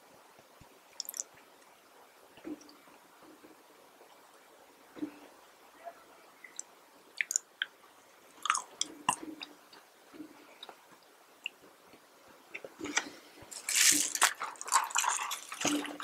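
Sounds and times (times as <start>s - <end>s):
wet mouth sounds: 7.2s - 7.7s
chewing french fries: 8.4s - 16.0s.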